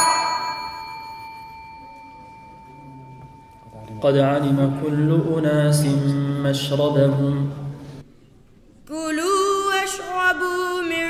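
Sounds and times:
small bell ringing: 0.0s - 4.5s.

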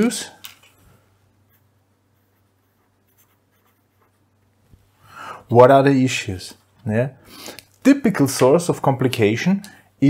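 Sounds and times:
low steady hum: 0.0s - 10.0s
pen scratching on paper: 1.5s - 4.2s.

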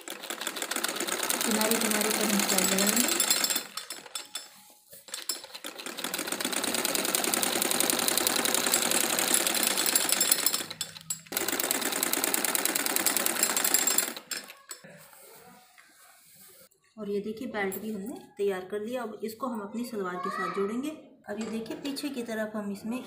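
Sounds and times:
sewing machine stitching: 0.0s - 14.8s.

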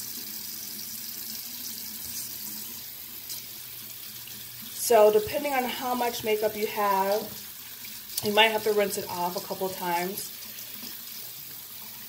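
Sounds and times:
water running from faucet into sink: 0.0s - 12.0s.

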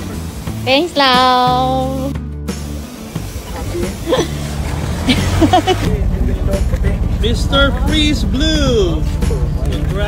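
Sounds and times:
steady low rumble: 5.8s - 10.0s.

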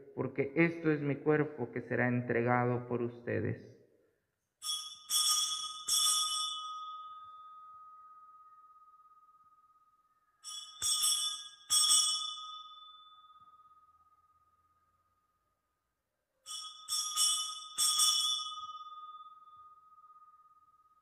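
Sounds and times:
altar bells ringing: 4.6s - 14.9s, 16.4s - 21.0s.

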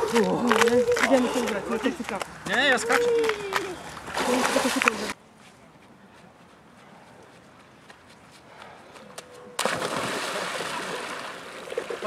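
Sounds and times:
water splashing: 4.1s - 5.2s, 9.6s - 12.0s.

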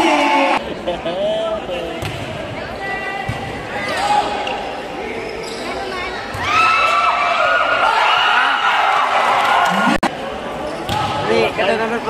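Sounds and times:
chatter of people: 0.0s - 6.5s.

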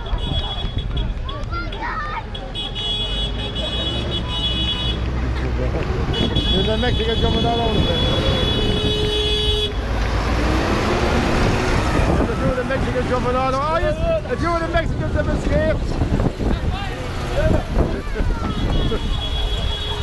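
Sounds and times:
crowd shouting and voices: 0.0s - 20.0s
horn toot: 2.5s - 5.1s, 6.1s - 9.8s, 18.4s - 20.0s.

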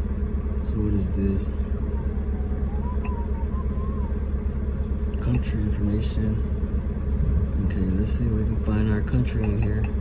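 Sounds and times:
truck engine idling: 0.0s - 10.0s
faint wavering tone: 1.6s - 4.7s.

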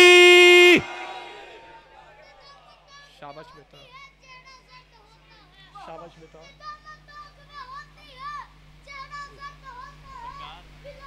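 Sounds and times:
child reciting in sing-song: 2.2s - 11.0s.

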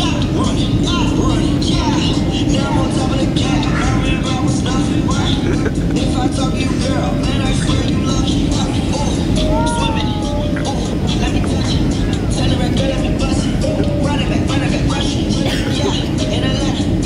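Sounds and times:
heavy bass: 0.0s - 17.0s
person rapping over a beat: 0.0s - 17.0s
repeating hi-hat pattern: 0.0s - 17.0s
short wavering vocal note: 9.4s - 10.8s.

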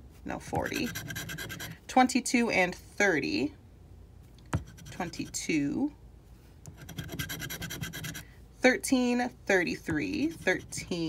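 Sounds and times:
scratching a scratch-off ticket: 0.6s - 1.8s, 4.6s - 5.5s, 6.7s - 8.2s, 9.9s - 11.0s.

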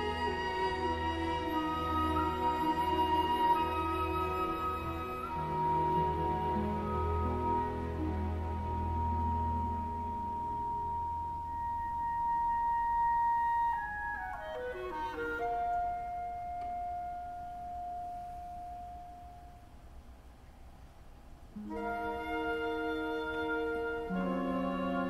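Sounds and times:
solo woodwind high note: 0.0s - 19.8s, 21.6s - 25.0s
soft low sustained orchestra notes: 0.0s - 25.0s.

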